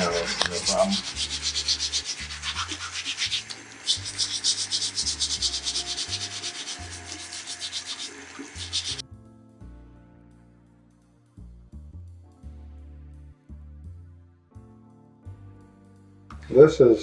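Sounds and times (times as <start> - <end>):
brush scrubbing plastic: 0.0 - 9.0
running tap water: 0.0 - 9.0.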